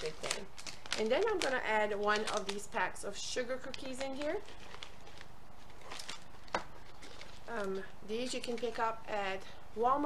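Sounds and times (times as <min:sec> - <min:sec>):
packet rustling: 0:00.0 - 0:08.8.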